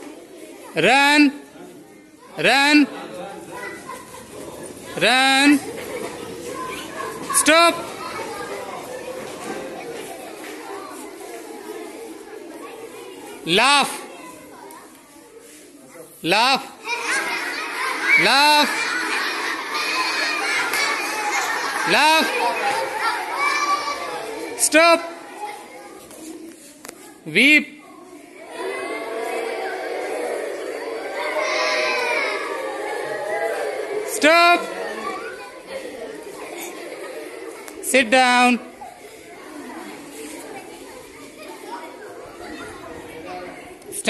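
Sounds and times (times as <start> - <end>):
children laughing: 3.0 - 13.4, 16.8 - 26.6, 28.0 - 44.0.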